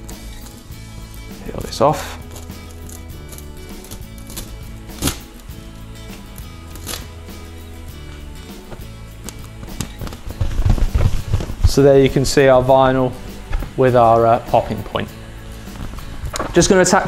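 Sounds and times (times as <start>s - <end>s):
transfer tape crinkling and tapping: 0.0s - 7.2s, 7.9s - 12.4s, 13.4s - 13.8s, 15.7s - 16.7s
soft background music: 0.0s - 17.0s.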